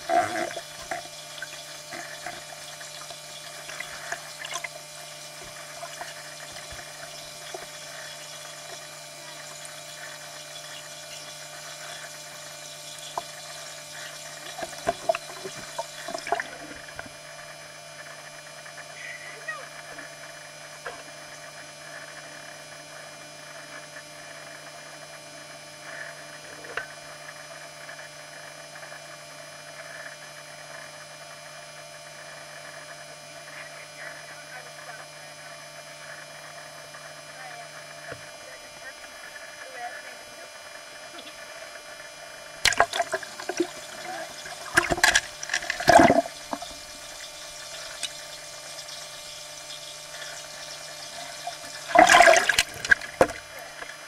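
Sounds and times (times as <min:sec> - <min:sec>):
steady hum: 0:00.0 - 0:54.0
pool water lapping and splashing: 0:42.6 - 0:54.0.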